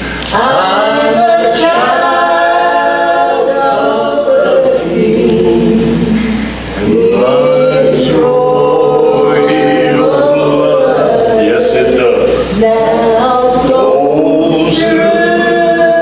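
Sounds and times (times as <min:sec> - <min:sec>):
voices singing gospel together: 0:00.0 - 0:16.0.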